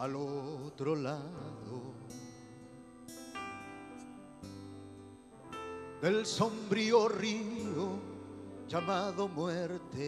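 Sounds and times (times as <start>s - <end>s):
keyboard chords: 0.0s - 10.0s.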